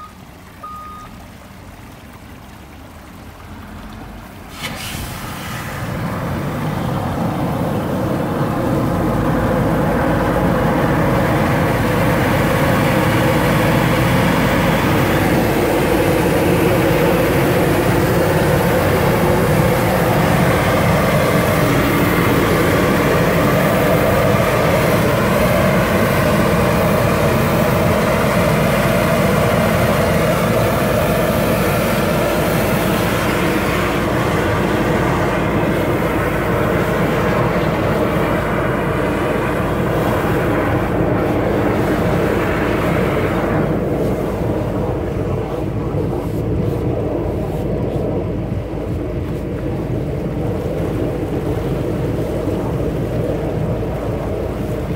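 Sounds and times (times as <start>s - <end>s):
engine and pump droning: 0.0s - 54.9s
water gushing from pipe: 1.2s - 54.9s.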